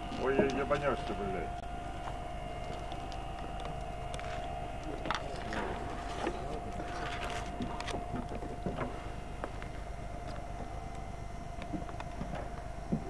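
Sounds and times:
mechanical hum with high tone: 0.0 - 13.0.

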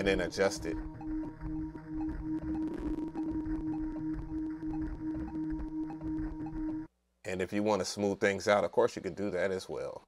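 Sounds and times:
repeating low pulse: 0.0 - 6.9
steady held tone: 0.0 - 6.9.

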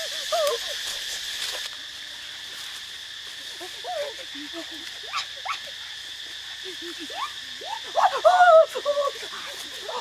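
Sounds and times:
high drone of insects: 0.0 - 10.0.

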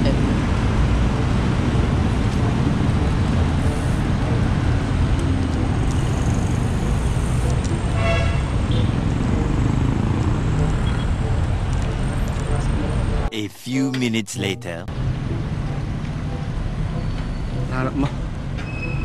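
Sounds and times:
road traffic noise: 0.0 - 13.3, 14.6 - 19.0
vehicle horn toot: 8.0 - 8.9.

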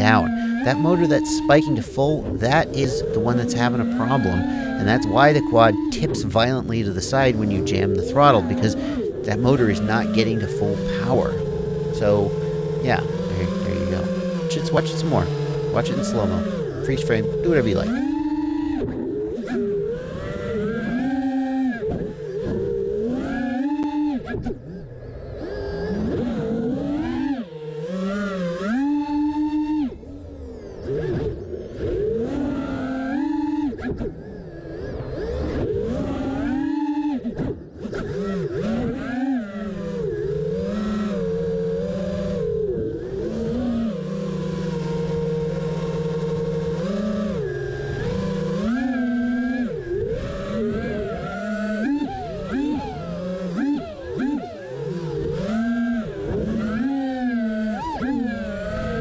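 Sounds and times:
drone motors and propellers whining: 0.0 - 59.0.

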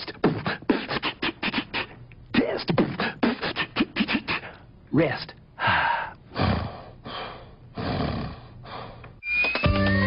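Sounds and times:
person gasping and breathing heavily: 0.2 - 2.0, 2.8 - 4.7, 5.6 - 9.2.

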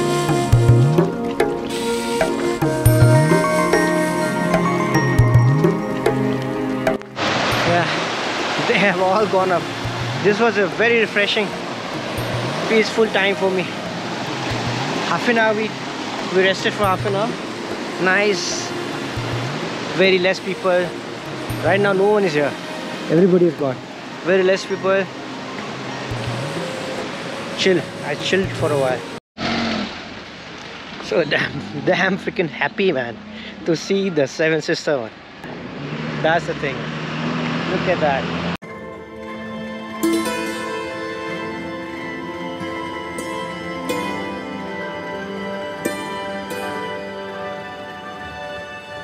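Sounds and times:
river running over rocks: 5.8 - 29.2
car passing by: 7.2 - 32.2, 35.4 - 38.6
man talking: 7.6 - 11.6, 12.6 - 13.8, 15.1 - 17.4, 18.0 - 18.8, 19.9 - 20.9, 21.6 - 25.1, 27.6 - 29.1, 31.0 - 35.1, 36.2 - 36.8.

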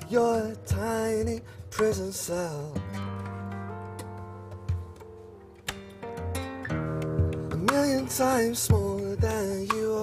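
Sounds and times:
acoustic guitar chords ringing: 0.0 - 10.0
sharp tap on guitar: 3.2 - 10.0.

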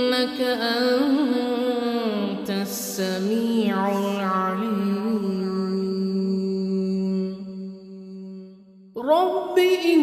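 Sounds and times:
person chanting: 0.0 - 10.0.

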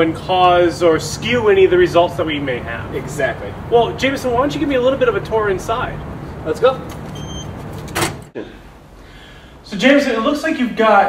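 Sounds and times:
door squeak: 6.8 - 8.3
glass door being pulled open: 6.9 - 8.3.

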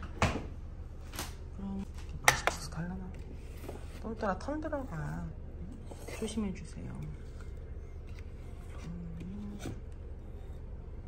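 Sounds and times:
steady low hum: 0.0 - 11.0
low hummed voice: 1.5 - 11.0.

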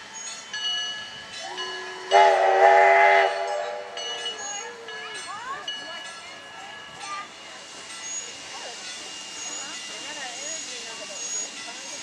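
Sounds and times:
electric railcar horn blast: 1.8 - 4.1.

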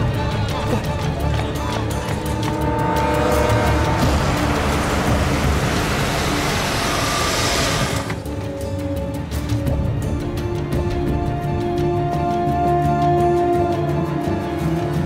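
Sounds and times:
dramatic background music: 0.0 - 15.0
car engine and tyres: 2.1 - 8.4.

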